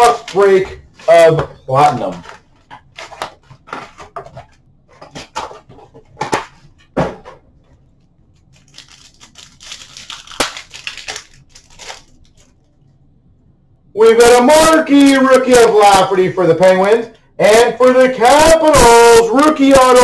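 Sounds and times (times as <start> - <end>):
card pack wrapper tearing: 8.4 - 12.6.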